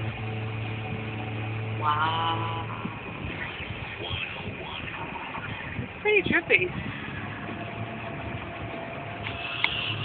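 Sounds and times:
car rolling slowly from inside: 0:00.0 - 0:10.0.

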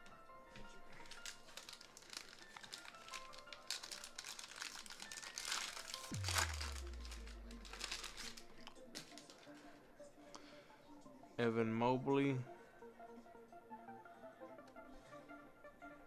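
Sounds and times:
background music: 0:00.0 - 0:16.0
foil wrappers crinkling and tearing: 0:00.7 - 0:09.5
deep bass tone: 0:06.1 - 0:08.6.

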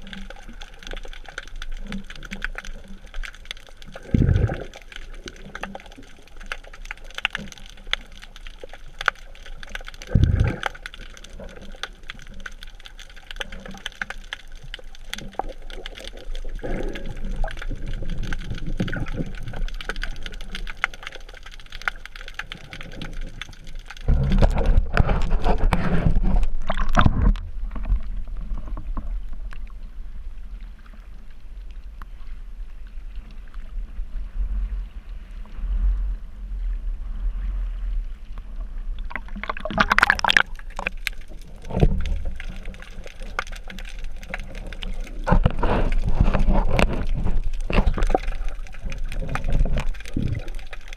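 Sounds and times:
dull wash of water: 0:00.0 - 0:50.9
underwater crackling and gurgling: 0:00.0 - 0:50.9
loud water splashing: 0:39.0 - 0:41.0.

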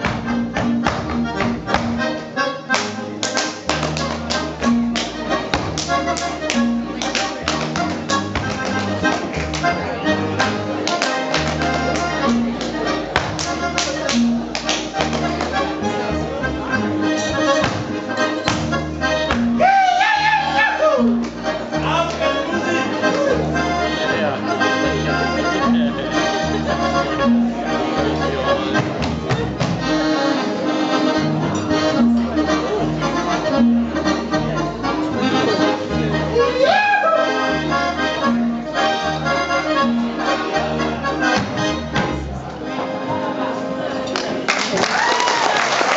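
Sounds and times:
folk dance music: 0:00.0 - 0:45.9.

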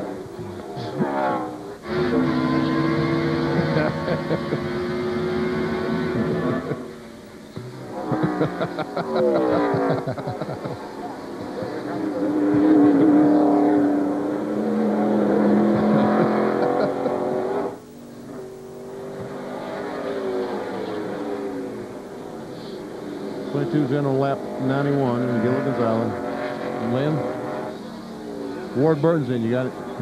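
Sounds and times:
race car engines revving: 0:00.0 - 0:30.0.

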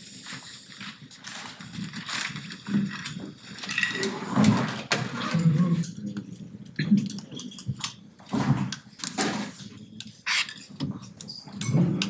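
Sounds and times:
rustling and shuffling: 0:00.0 - 0:05.1.

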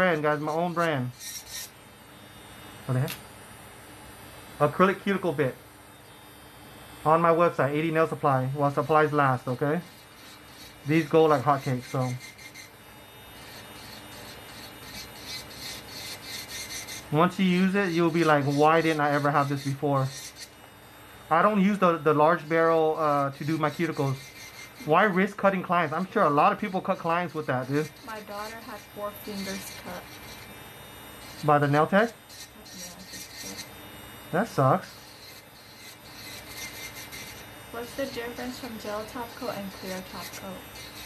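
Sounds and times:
electric nail drill grinding: 0:00.0 - 0:41.0.

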